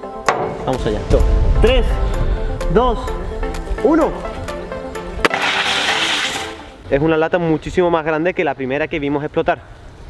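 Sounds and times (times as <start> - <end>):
background music: 0.0 - 7.8
aerosol can hissing: 5.3 - 6.7.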